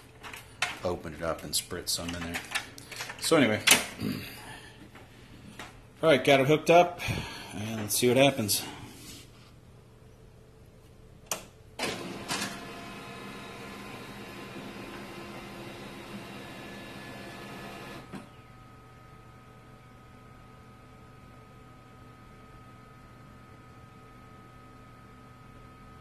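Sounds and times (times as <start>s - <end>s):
faint hum with thin whine: 0.0s - 26.0s
printer mechanism running: 11.8s - 18.3s.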